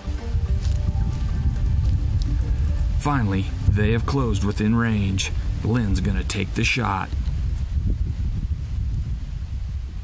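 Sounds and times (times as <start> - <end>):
dry grass and leaves rustling: 0.0 - 10.0
wind buffeting microphone: 0.0 - 10.0.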